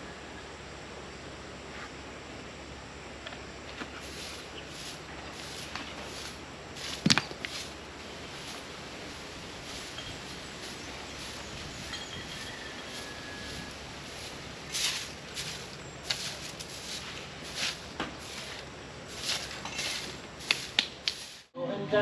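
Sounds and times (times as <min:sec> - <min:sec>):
broom sweeping dirt ground: 0:01.7 - 0:02.0, 0:03.6 - 0:21.6.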